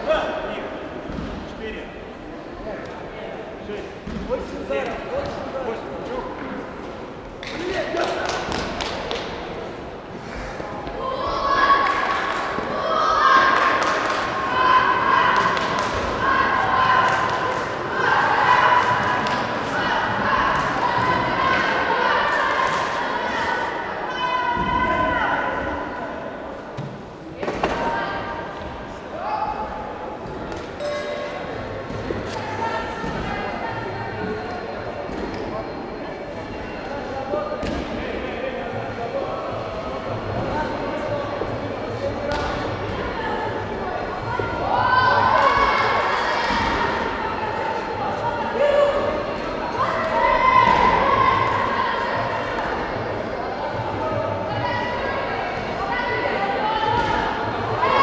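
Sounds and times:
voices echoing in a hall: 0.0s - 58.0s.

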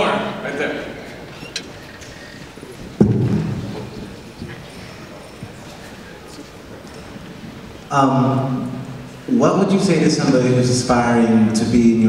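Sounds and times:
theatre hall background noise: 0.0s - 12.0s
thump on handheld microphone: 3.0s - 4.0s.

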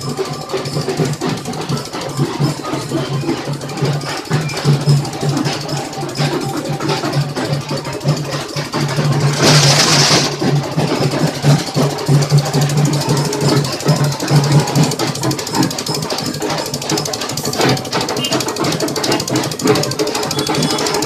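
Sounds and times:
engine running: 0.0s - 21.0s.

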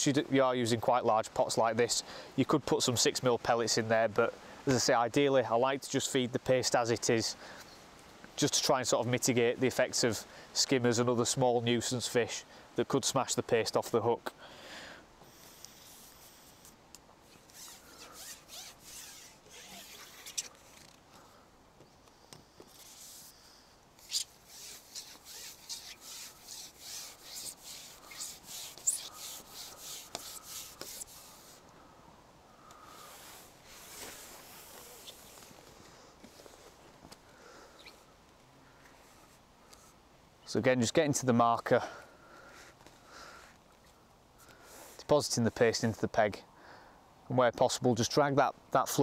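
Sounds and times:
fishing pole sections rasping: 15.2s - 21.0s, 22.5s - 31.7s, 32.9s - 36.8s.

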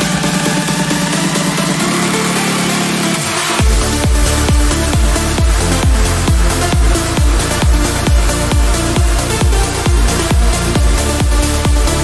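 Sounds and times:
low synth tone: 0.0s - 12.0s.

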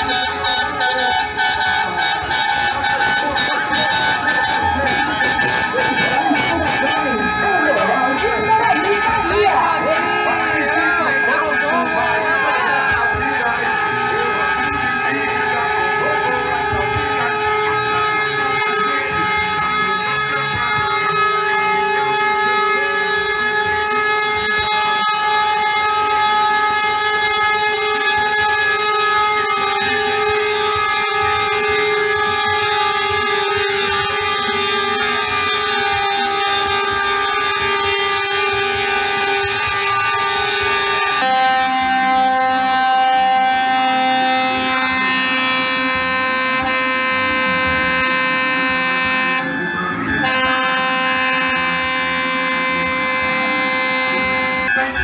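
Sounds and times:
truck air horns: 0.0s - 55.0s.

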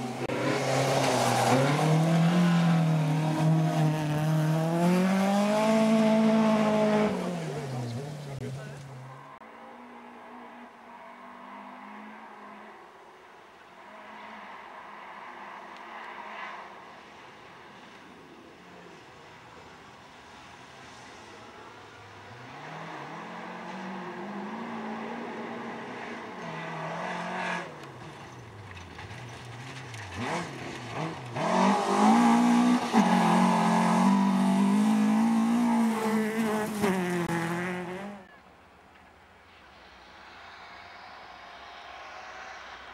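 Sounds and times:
rally car engines revving: 0.0s - 13.1s, 18.6s - 38.4s.

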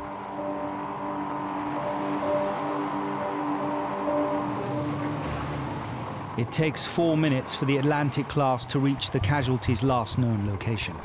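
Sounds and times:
pulsing background music: 0.0s - 6.4s
boat engines running: 0.0s - 11.0s.

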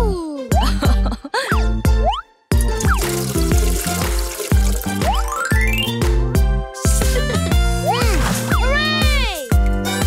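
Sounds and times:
children's music with bouncy bass: 0.0s - 10.0s
bath tap running: 2.6s - 5.8s.

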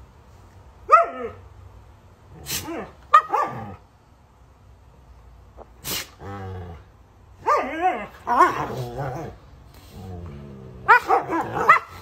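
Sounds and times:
dogs yelping: 7.4s - 9.4s, 10.8s - 12.0s
dog low grumble: 8.4s - 11.6s.

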